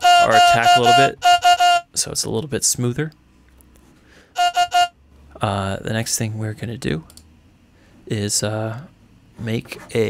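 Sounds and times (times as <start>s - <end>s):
synth vocal sample notes: 0.0s - 1.2s.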